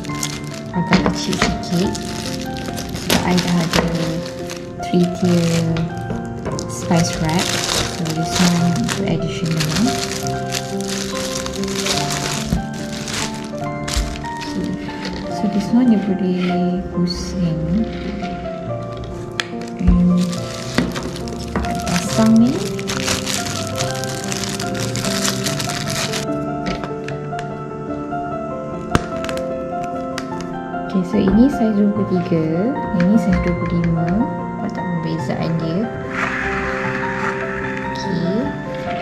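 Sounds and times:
background music with held tones: 0.0s - 39.0s.

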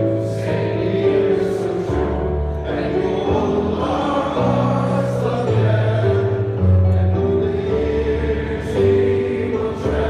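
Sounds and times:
male choir singing: 0.0s - 10.0s.

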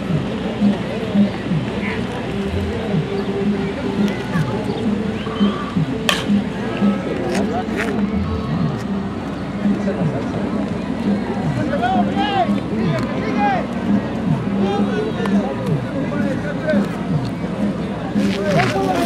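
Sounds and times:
music with a steady beat: 0.0s - 19.0s
bat hitting ball: 6.1s - 6.4s.

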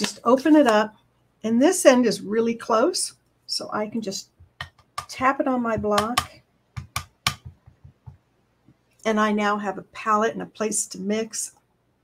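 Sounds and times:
ink pad tapping on ceramic tile: 4.4s - 8.2s.

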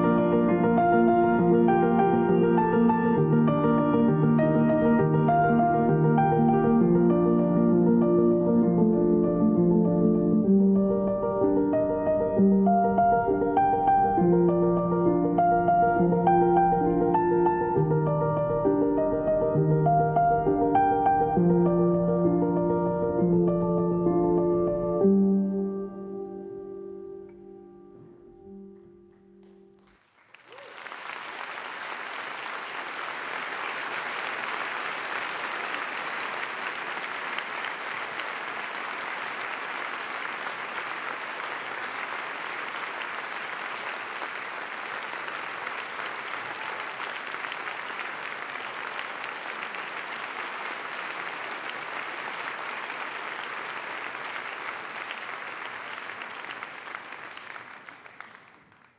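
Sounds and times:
audience applauding: 29.4s - 58.9s.

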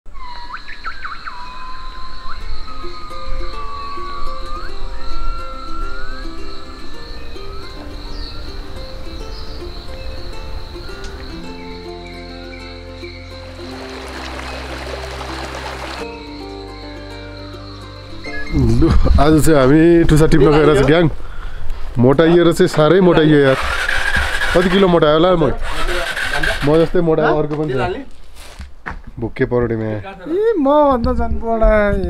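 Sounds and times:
whistled bird calls: 0.1s - 18.7s
high insect drone: 0.2s - 21.7s
instrumental music: 1.6s - 20.8s
hissing swell: 2.0s - 18.7s.

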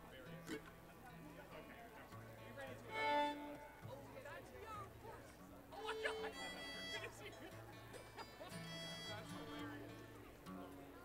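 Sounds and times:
acoustic string instruments being tuned: 2.5s - 3.8s.

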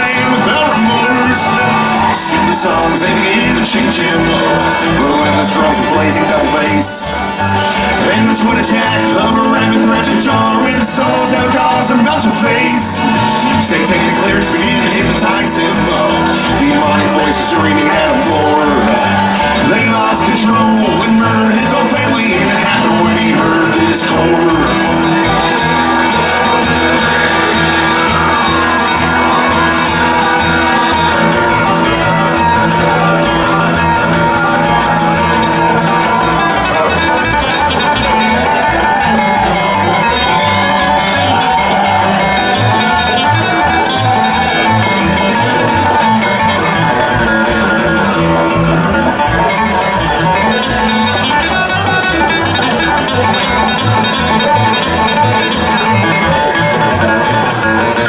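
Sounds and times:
bluegrass band playing: 0.0s - 58.0s
upright bass plucking: 0.0s - 58.0s.

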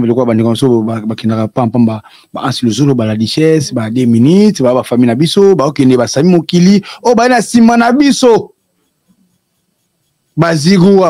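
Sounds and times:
man speaking into a microphone: 0.0s - 8.6s, 10.3s - 11.0s.

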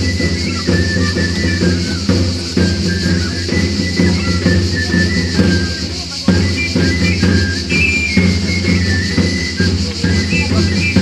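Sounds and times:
steady drum beats: 0.0s - 11.0s.

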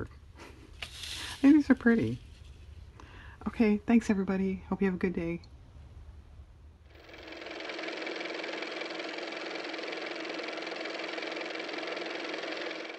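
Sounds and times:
old car engine running: 6.9s - 12.9s.

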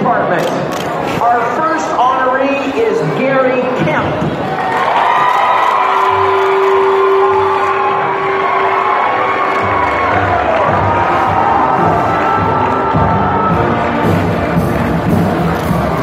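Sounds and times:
indoor crowd cheering and whooping: 4.3s - 16.0s
music playing: 5.6s - 16.0s.

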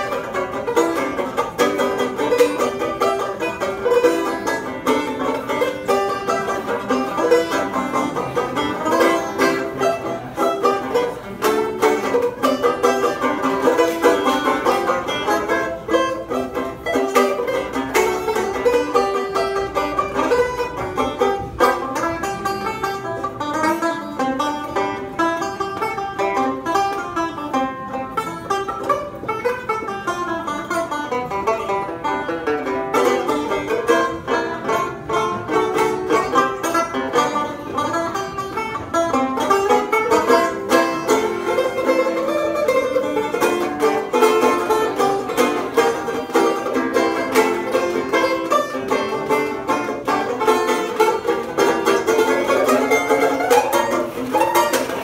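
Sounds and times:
banjo picking: 0.0s - 55.0s.

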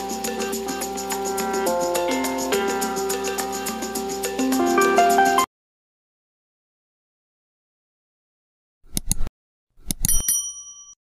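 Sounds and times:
mouse clicks: 8.9s - 10.1s
bright bell ding: 10.1s - 11.0s.

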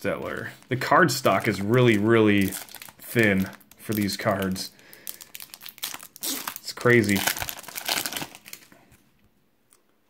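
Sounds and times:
foil wrapper crinkling: 0.0s - 8.9s.

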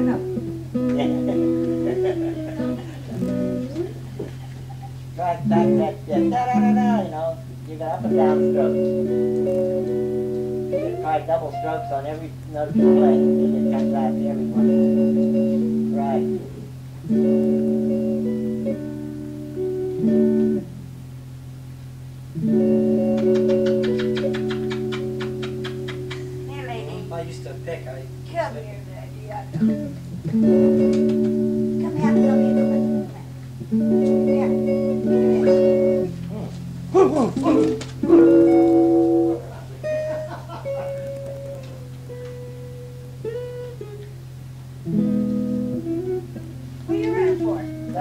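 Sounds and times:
guitar rapid picked strokes: 0.0s - 21.0s, 22.3s - 28.6s, 29.4s - 48.0s
steady low hum: 0.0s - 48.0s
person speaking: 5.0s - 9.6s, 10.7s - 14.9s, 23.1s - 30.8s, 31.8s - 33.3s, 34.1s - 39.9s.

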